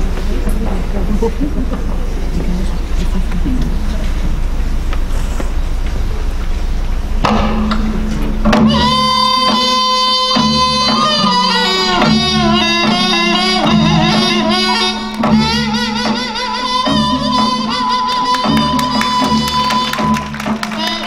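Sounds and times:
steady held drone: 0.0 - 21.0
wind instrument melody: 8.5 - 21.0.

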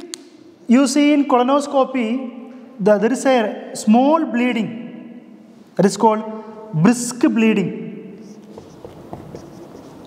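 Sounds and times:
marker scratching on whiteboard: 8.2 - 10.0.

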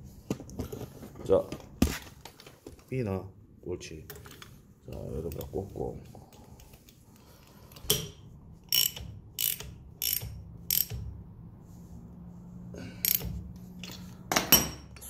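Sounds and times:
socket wrench ratcheting: 7.7 - 11.1, 13.0 - 14.0.

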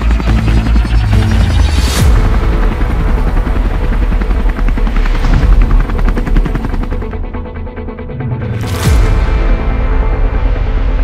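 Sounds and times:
helicopter rotor chopping: 0.0 - 7.6.

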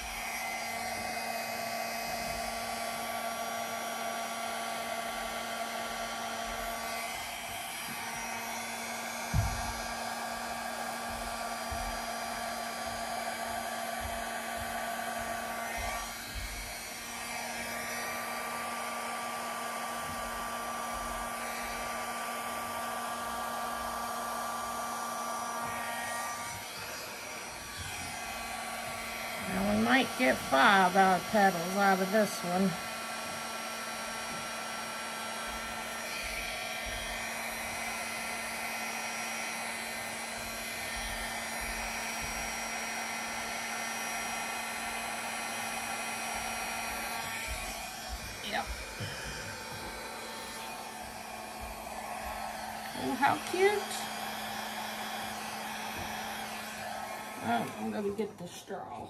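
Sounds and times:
blow dryer running: 0.0 - 59.0.

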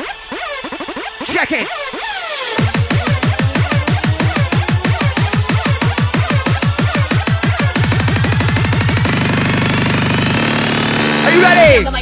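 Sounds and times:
fast kick drum roll buzzing: 2.6 - 11.8.

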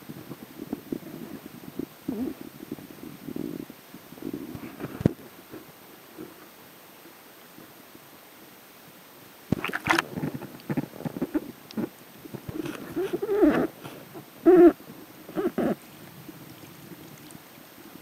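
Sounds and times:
underwater regulator breathing bubbles: 9.5 - 11.3.

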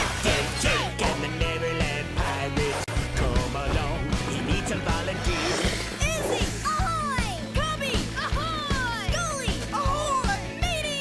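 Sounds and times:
upbeat children's cartoon song: 0.0 - 11.0.

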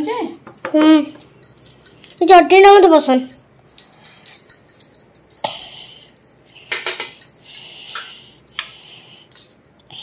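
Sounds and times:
spoon clinking on steel plates: 0.0 - 9.9.

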